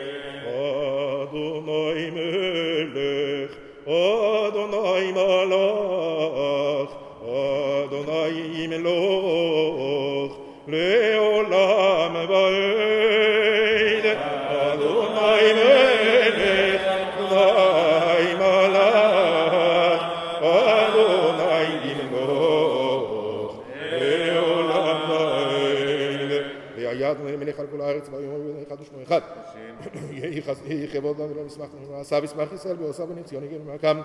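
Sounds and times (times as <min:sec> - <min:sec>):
person chanting prayer: 0:00.0 - 0:34.0.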